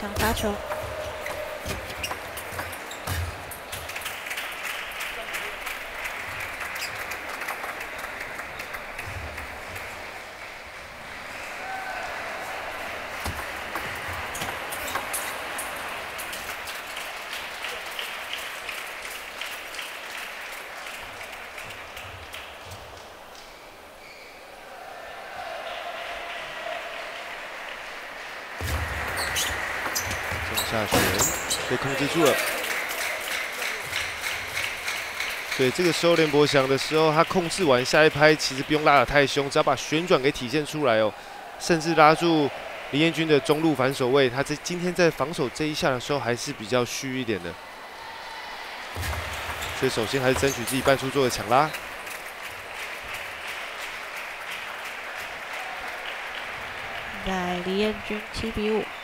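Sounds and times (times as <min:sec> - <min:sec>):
crowd shouting and clapping: 0:00.0 - 0:23.8, 0:24.6 - 0:59.0
murmur of large hall: 0:00.0 - 0:59.0.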